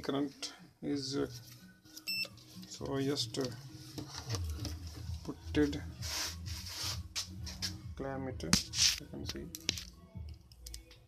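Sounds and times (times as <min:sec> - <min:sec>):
rubbing and scraping handling noise: 0:01.2 - 0:09.9.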